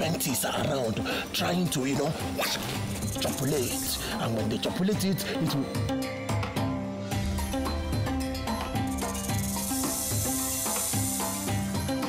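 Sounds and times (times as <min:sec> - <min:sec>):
rhythmic background music: 0:00.0 - 0:12.0
high snake hiss: 0:02.2 - 0:04.4, 0:08.5 - 0:12.0.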